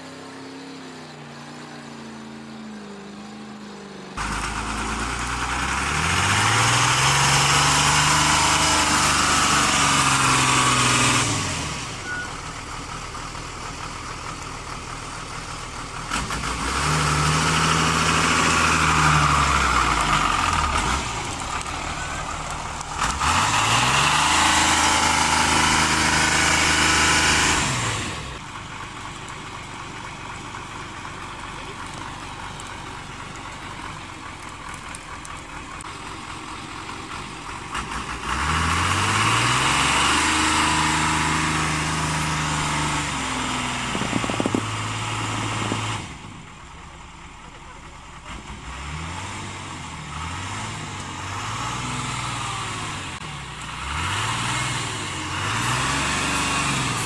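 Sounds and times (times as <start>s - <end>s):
truck engine revving: 0.0s - 57.0s.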